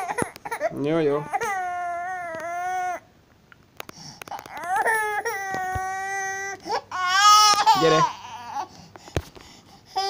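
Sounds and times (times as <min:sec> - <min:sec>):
baby crying: 0:00.0 - 0:03.1, 0:04.3 - 0:08.9
baby catching breath: 0:03.9 - 0:04.5, 0:08.6 - 0:10.0.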